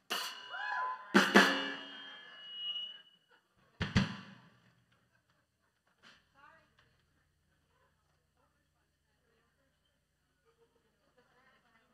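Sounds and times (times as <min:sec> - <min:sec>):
high ringing tone: 0:00.3 - 0:03.2
rock band final hit: 0:01.2 - 0:02.2.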